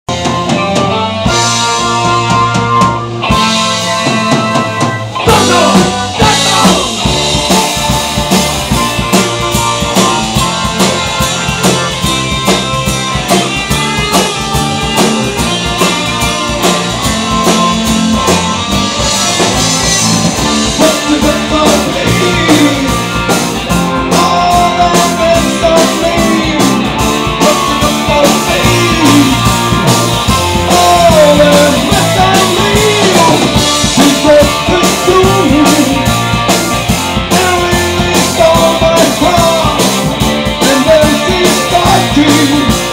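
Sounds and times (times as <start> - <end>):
lead guitar with bent notes: 0.1 - 42.9
live rock band playing: 0.1 - 42.9.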